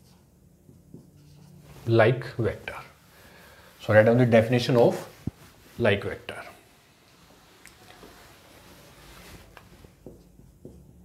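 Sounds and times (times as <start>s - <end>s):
marker writing on whiteboard: 0.0s - 1.7s, 9.2s - 11.0s
man talking: 1.8s - 3.0s, 3.8s - 5.2s, 5.8s - 6.6s.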